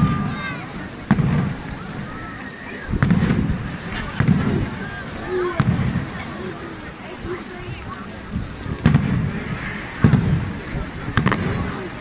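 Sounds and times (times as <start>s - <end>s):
firecracker bangs: 0.0s - 6.3s, 8.7s - 12.0s
crowd chatter: 0.0s - 12.0s.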